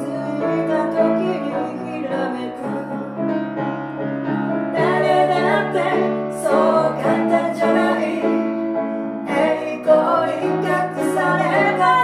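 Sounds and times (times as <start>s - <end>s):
woman singing: 0.0s - 3.2s, 9.3s - 12.0s
grand piano: 0.0s - 12.0s.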